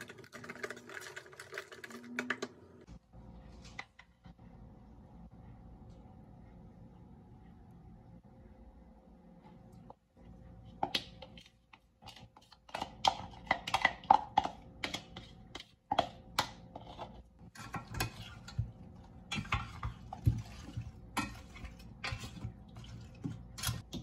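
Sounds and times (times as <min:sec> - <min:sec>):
food squelching while mixed: 0:10.7 - 0:24.0.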